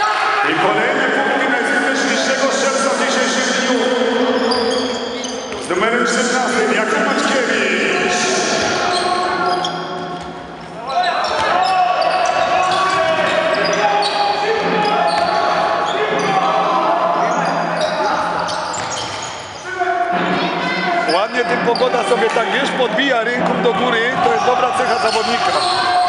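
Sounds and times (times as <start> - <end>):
players calling out: 0.0 - 26.0
shoes squeaking: 4.3 - 5.7, 8.8 - 16.6, 17.2 - 19.7, 24.3 - 26.0.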